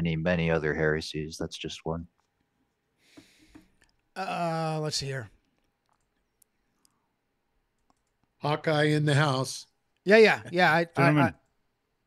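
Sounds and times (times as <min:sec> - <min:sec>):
computer mouse clicks: 0:05.4 - 0:07.0, 0:07.7 - 0:08.4.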